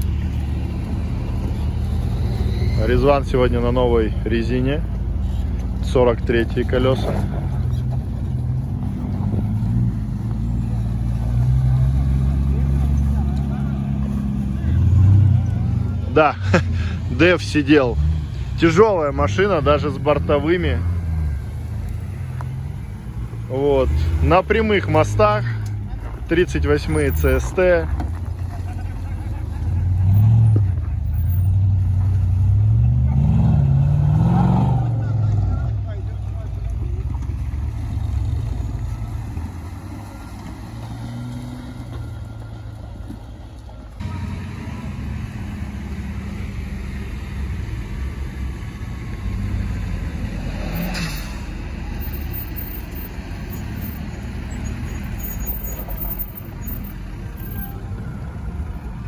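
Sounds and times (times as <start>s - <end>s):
low engine rumble: 0.0s - 59.0s
off-road vehicle engine revving: 0.0s - 59.0s.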